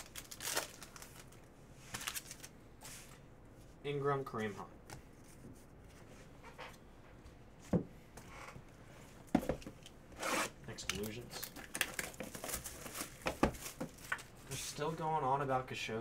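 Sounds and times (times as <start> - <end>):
card wrapper crinkling and tearing: 0.0 - 2.5, 10.8 - 14.3
cards rustling and clicking: 10.8 - 14.3.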